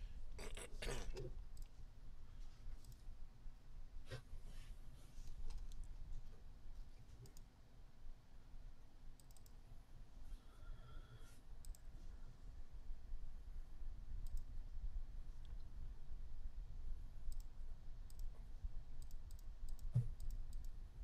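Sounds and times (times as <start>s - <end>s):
faint sharp clicks: 17.3s - 17.5s.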